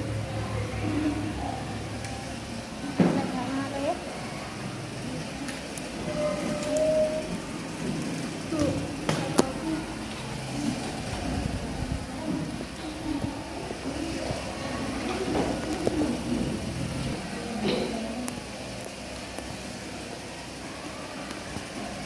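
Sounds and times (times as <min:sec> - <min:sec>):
young children's voices: 0:00.0 - 0:22.0.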